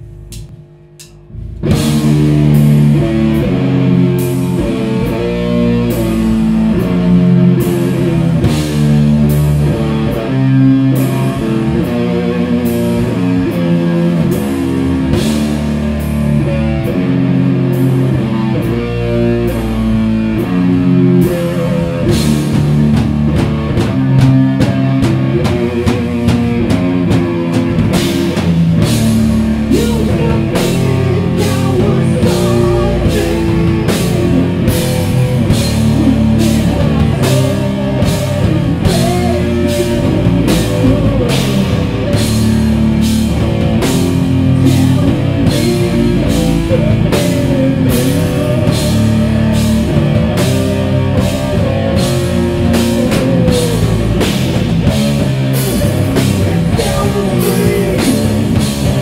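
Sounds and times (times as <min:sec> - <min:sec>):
drum and cymbal hits: 0:00.0 - 0:16.4, 0:20.5 - 0:59.0
heavy metal band playing: 0:00.0 - 0:59.0.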